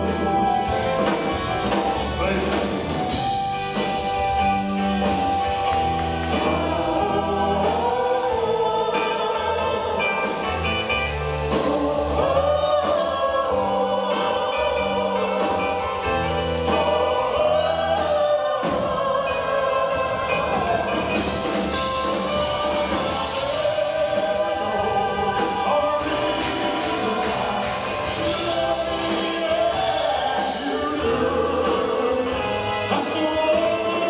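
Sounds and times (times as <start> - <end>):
live rock ballad: 0.0 - 34.0
choir-like sung notes: 3.4 - 34.0.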